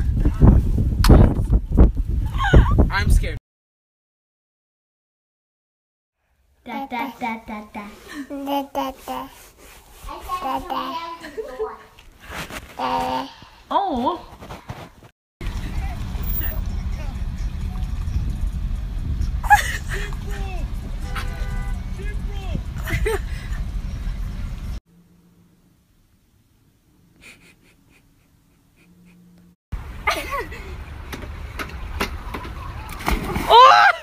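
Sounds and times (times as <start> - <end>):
low wind rumble: 0.0 - 3.4, 15.4 - 24.8
car driving slowly: 15.4 - 24.8.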